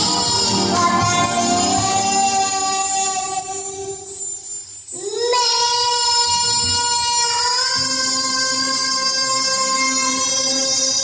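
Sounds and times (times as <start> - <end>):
backing music: 0.0 - 4.1
girl singing into a microphone: 0.0 - 11.0.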